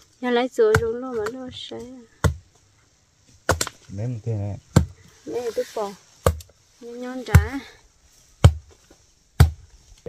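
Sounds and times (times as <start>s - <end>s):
chopping blows on wood: 0.6s - 1.6s, 2.2s - 2.5s, 3.4s - 3.8s, 4.7s - 5.0s, 6.2s - 6.5s, 7.3s - 7.6s, 8.4s - 8.8s, 9.4s - 9.7s.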